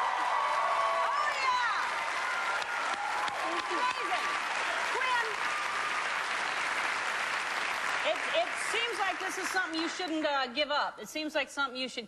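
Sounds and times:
people whooping: 0:00.0 - 0:06.5
audience applauding: 0:00.0 - 0:10.3.

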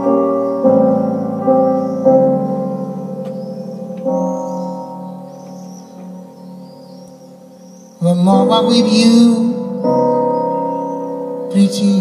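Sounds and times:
electric piano chords with tremolo: 0:00.0 - 0:12.0.

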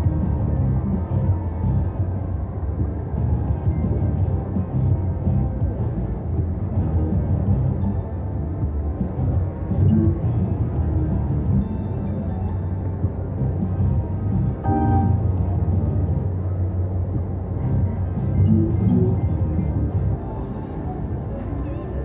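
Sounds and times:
low background din: 0:00.0 - 0:22.0
short pitched tone: 0:14.6 - 0:15.4
slot machine game music: 0:14.6 - 0:15.4, 0:18.5 - 0:19.2.

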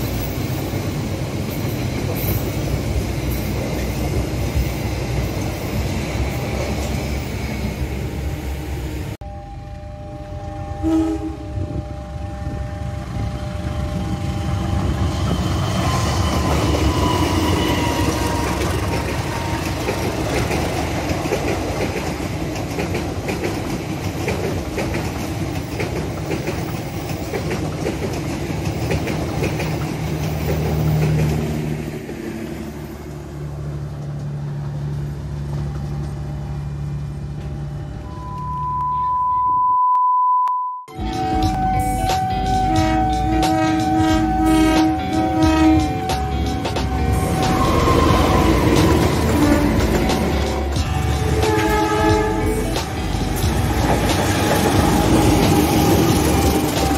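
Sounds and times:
wheels clattering on rails: 0:13.9 - 0:33.0, 0:41.2 - 0:56.9
steady electronic tone: 0:37.6 - 0:48.7
music with a beat: 0:41.0 - 0:47.7, 0:49.8 - 0:55.7
locomotive engine rumble: 0:41.0 - 0:56.9.

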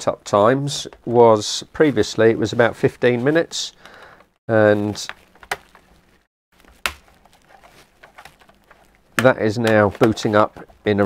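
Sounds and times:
light taps and handling: 0:06.7 - 0:10.9.

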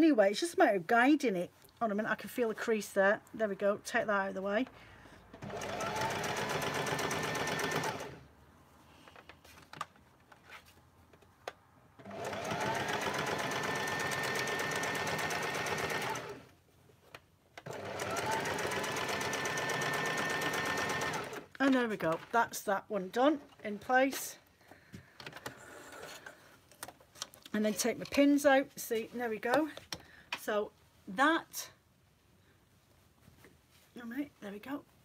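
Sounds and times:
sewing machine stitching: 0:05.3 - 0:08.3, 0:12.0 - 0:16.5, 0:17.6 - 0:21.6.

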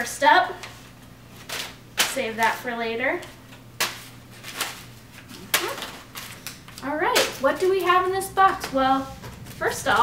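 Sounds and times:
packing wrapping rustling: 0:03.8 - 0:10.0.

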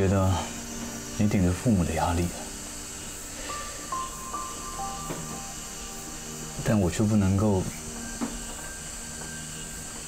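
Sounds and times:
faint background music tone: 0:00.0 - 0:10.0
soft steady hiss: 0:00.0 - 0:10.0.

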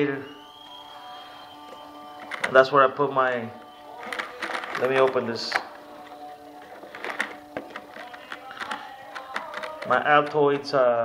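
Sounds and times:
faint background music: 0:00.0 - 0:11.0
leather flap clicks and taps: 0:04.0 - 0:10.4.

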